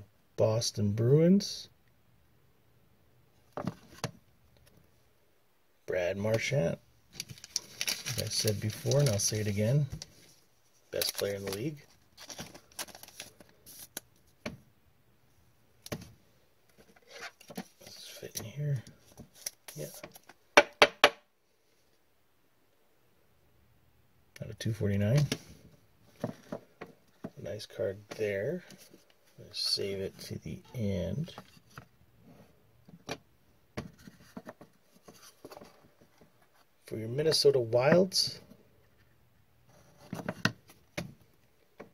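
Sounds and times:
plastic sleeve rustling and crinkling: 7.1s - 14.1s.

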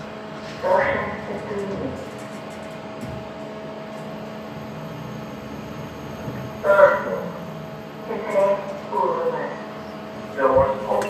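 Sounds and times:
lift humming: 2.7s - 11.0s
faint whine: 3.8s - 11.0s.

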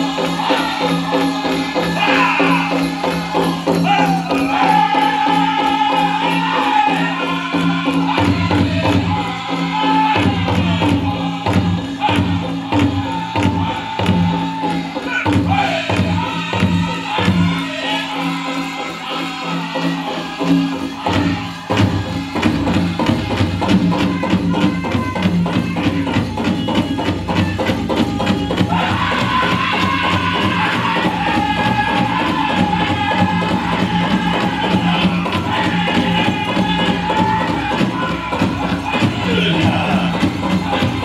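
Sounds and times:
men singing together: 0.0s - 41.0s
steady drumbeat: 0.0s - 41.0s.

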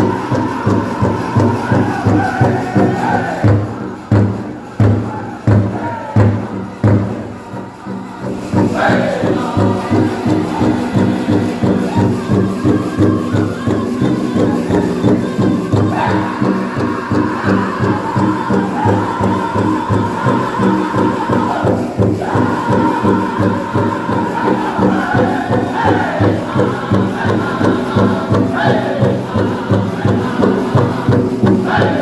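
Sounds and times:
drum group singing: 0.0s - 32.0s
fast steady drumbeat: 0.0s - 32.0s.

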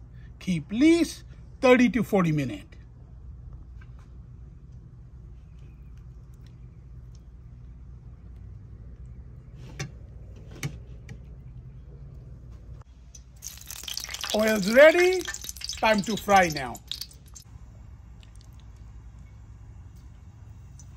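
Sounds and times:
low steady rumble: 0.0s - 20.9s.

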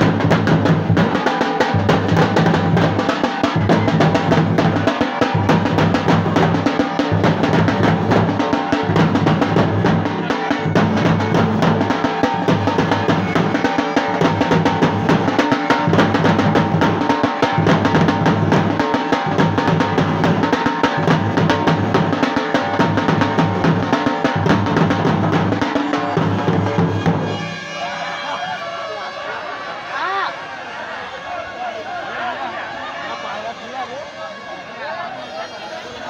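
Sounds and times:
deep bass drum beats: 0.0s - 27.4s
drum group playing: 0.0s - 28.6s
crowd voices: 0.0s - 36.0s.

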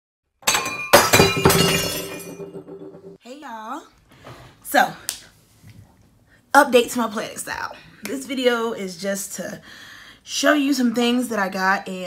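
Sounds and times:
glass shattering: 0.4s - 3.2s.

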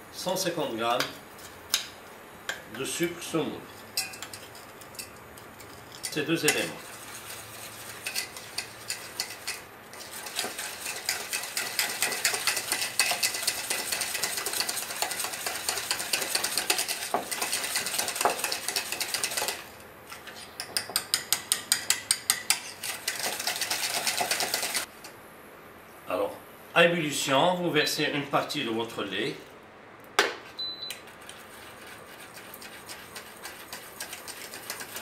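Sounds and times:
whisk clicking against metal bowl: 6.0s - 19.7s, 20.7s - 24.9s, 31.2s - 35.0s.

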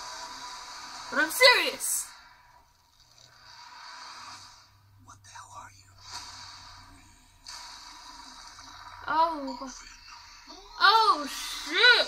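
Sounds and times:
faint movie trailer soundtrack: 0.0s - 12.0s.

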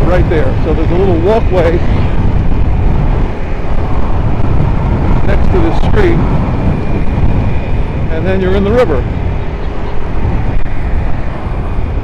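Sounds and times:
motorcycle riding: 0.0s - 12.0s
wind buffeting microphone: 0.0s - 12.0s.

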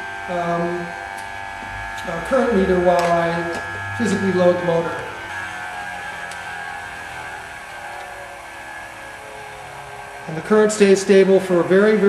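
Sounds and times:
motor whining: 0.0s - 12.0s.

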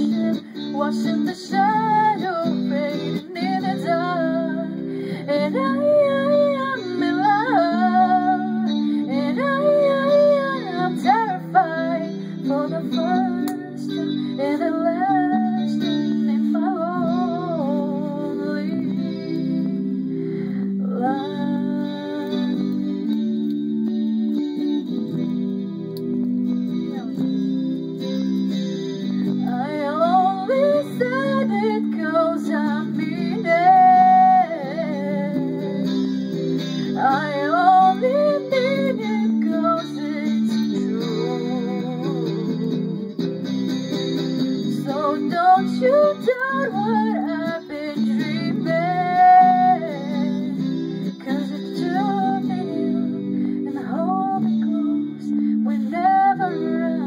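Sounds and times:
electric guitar chord backing: 0.0s - 57.0s
sliding guitar melody: 0.0s - 57.0s.

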